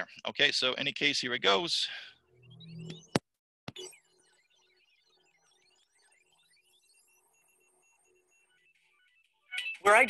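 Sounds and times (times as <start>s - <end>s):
faint electronic beeps: 0.0s - 10.0s.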